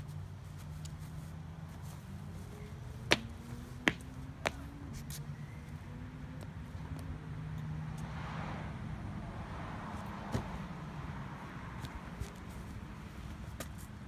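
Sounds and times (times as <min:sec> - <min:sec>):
road traffic rumble: 0:00.0 - 0:14.0
shoes slapping on concrete: 0:03.0 - 0:05.2.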